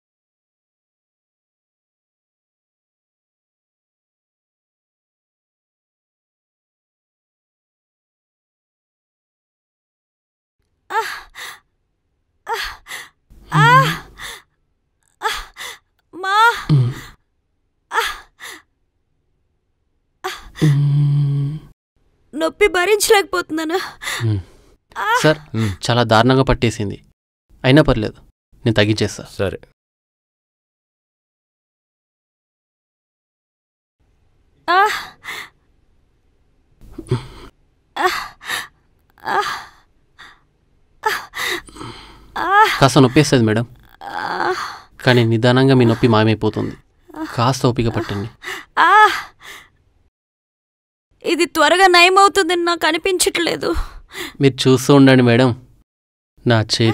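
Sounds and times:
woman gasping and sighing: 10.9 - 11.6, 12.5 - 14.5, 15.2 - 17.2, 17.9 - 18.7, 20.2 - 21.7, 23.8 - 25.8, 34.7 - 35.6, 37.0 - 40.4, 41.0 - 42.9, 44.0 - 45.0, 48.0 - 49.7, 53.6 - 54.4
woman moaning: 12.5 - 14.4, 15.2 - 17.1, 17.9 - 18.6, 20.3 - 21.7, 25.0 - 25.8, 34.7 - 35.5, 37.0 - 40.4, 41.0 - 43.0, 43.9 - 44.9, 47.1 - 49.5.

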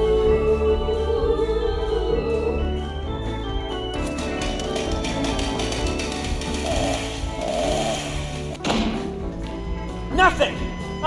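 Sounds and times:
held keyboard chords: 1.9 - 8.6
percussive taps: 4.0 - 6.6.

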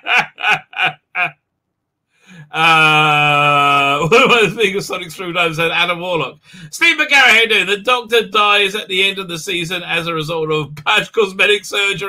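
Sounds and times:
man laughing: 0.0 - 1.4, 2.4 - 5.4.

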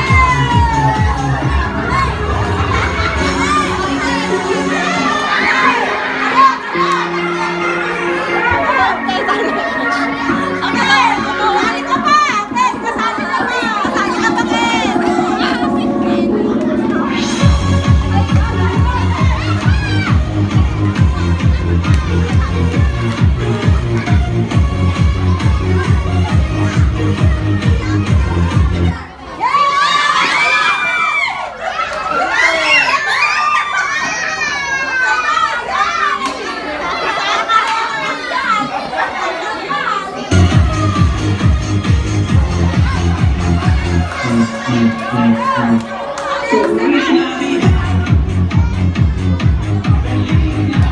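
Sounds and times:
music playing: 0.0 - 29.1, 40.3 - 50.9
children shouting and chattering: 0.0 - 50.9.

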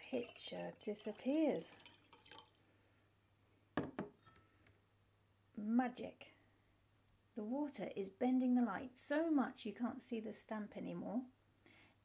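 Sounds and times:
water trickling into glass jar: 0.0 - 2.7
water drips: 0.0 - 2.8.

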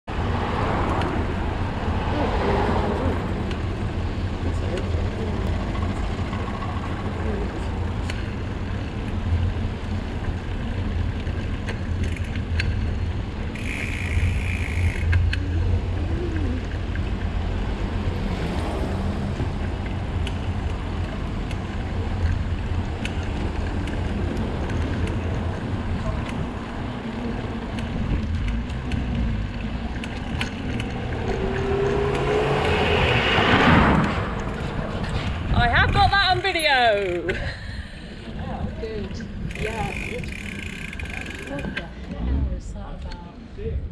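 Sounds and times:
tyre and street noise: 0.0 - 43.9
wind rumbling on microphone: 15.0 - 37.0, 38.2 - 40.6.

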